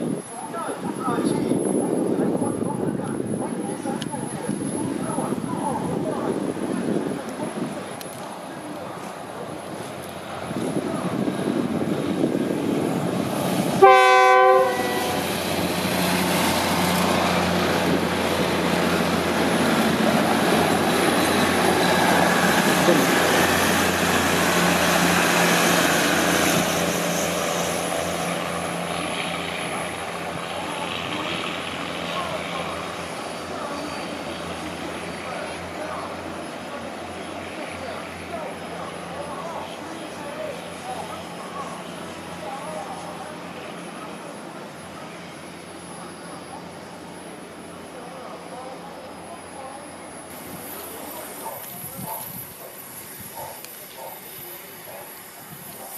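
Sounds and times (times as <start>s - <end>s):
rumble of train cars passing: 0.0s - 55.9s
train horn blast: 13.8s - 15.3s.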